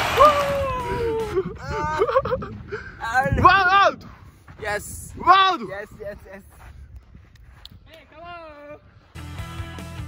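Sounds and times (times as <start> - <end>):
faint footsteps on sand: 2.0 - 9.6.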